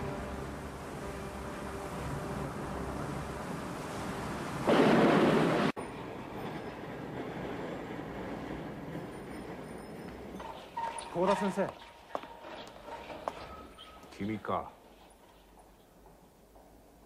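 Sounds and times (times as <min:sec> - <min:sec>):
heavy rain pouring: 0:00.0 - 0:05.8
loud rushing blast: 0:04.6 - 0:05.8.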